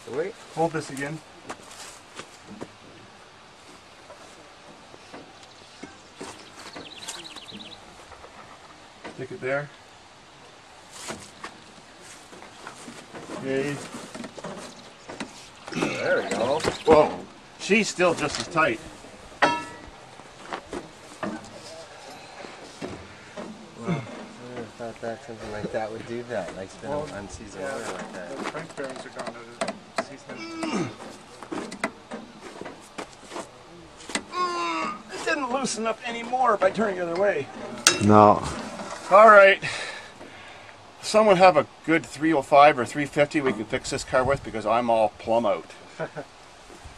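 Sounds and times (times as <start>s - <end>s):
bird singing falling notes: 5.1s - 7.9s, 14.4s - 17.3s
metal tools knocking and clinking: 19.4s - 19.9s.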